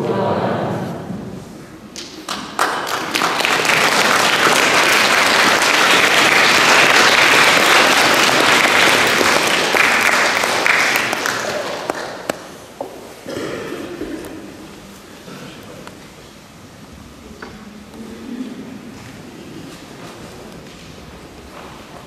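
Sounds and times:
congregation applauding: 0:02.0 - 0:12.7.

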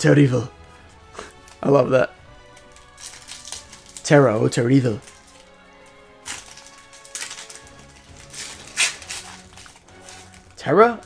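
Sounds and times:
soft background music: 0:00.0 - 0:11.0
foil wrapper tearing: 0:02.5 - 0:04.4, 0:05.0 - 0:05.5, 0:06.2 - 0:10.6.

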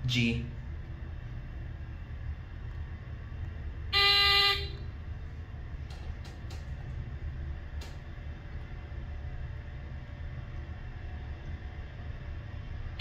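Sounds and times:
low hum: 0:00.0 - 0:13.0
elevator beep: 0:04.0 - 0:04.8.

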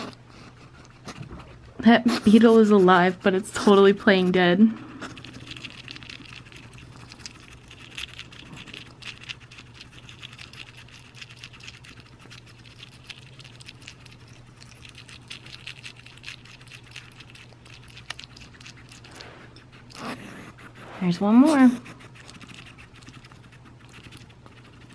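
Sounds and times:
hedgehog chewing insects: 0:00.0 - 0:24.9.

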